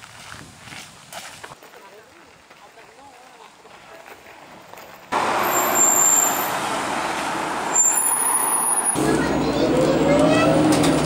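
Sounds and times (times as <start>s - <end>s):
street traffic: 2.9s - 11.0s
city bus: 5.0s - 11.0s.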